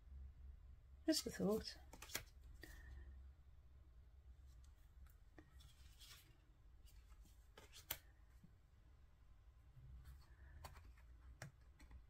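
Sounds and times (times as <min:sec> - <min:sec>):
low room hum: 0:00.0 - 0:12.0
tarot cards sliding and tapping: 0:01.6 - 0:02.8, 0:04.6 - 0:08.2, 0:10.0 - 0:12.0.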